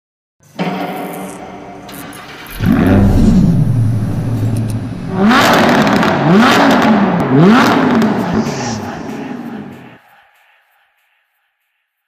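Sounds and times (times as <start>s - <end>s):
car engine revving: 2.2s - 10.0s.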